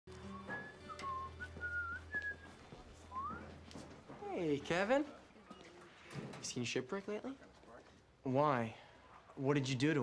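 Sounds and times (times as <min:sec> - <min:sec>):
person whistling a tune: 0:00.2 - 0:03.5.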